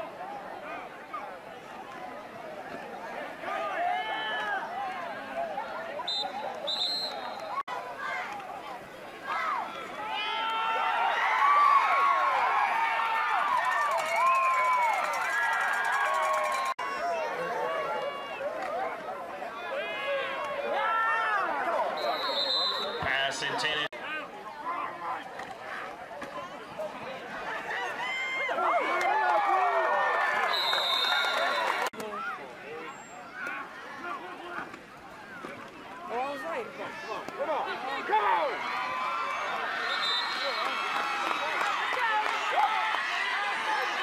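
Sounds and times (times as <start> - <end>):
crowd yelling and cheering: 0.0 - 44.0.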